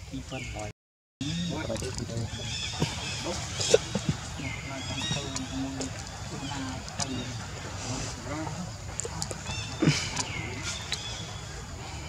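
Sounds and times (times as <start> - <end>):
macaques chirping and squealing: 1.2 - 12.0.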